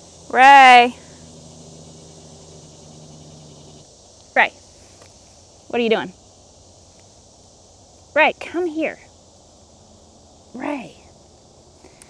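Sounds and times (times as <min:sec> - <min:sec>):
steady low hum: 0:00.0 - 0:07.9
soft hiss: 0:00.0 - 0:12.0.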